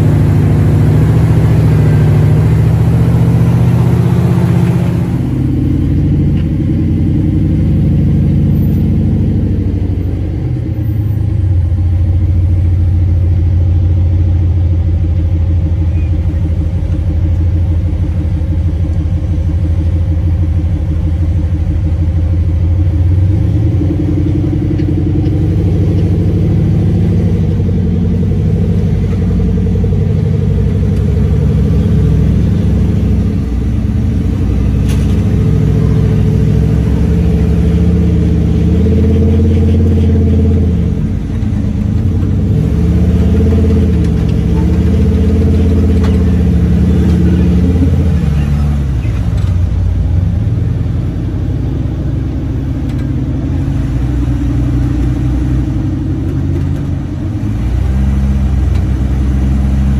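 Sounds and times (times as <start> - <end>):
buggy engine revving: 0.0 - 59.9.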